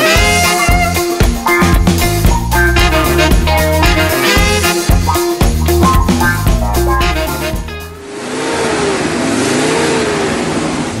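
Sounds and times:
background music: 0.0s - 8.0s
car engine at speed: 8.0s - 11.0s
wind and tyre noise: 8.0s - 11.0s.

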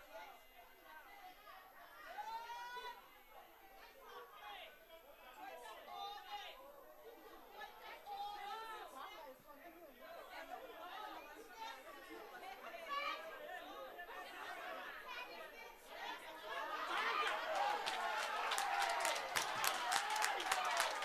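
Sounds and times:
indistinct chatter of many people: 0.0s - 21.0s.

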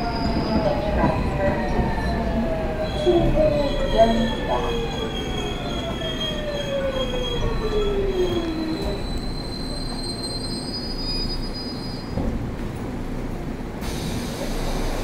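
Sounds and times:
subway train rumble: 0.0s - 15.0s.

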